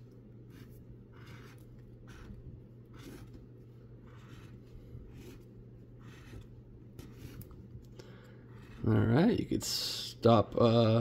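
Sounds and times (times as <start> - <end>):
scraper scratching lottery ticket: 0.4 - 3.4, 4.0 - 7.5, 8.4 - 9.4.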